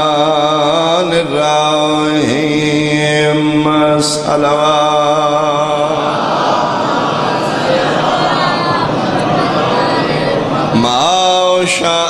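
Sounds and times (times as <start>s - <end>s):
man chanting religious recitation: 0.0s - 6.2s, 10.5s - 12.0s.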